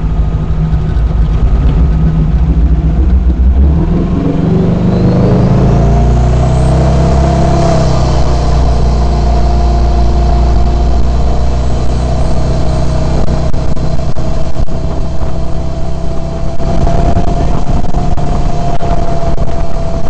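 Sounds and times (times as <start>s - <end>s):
jet boat engine accelerating: 0.0s - 20.0s.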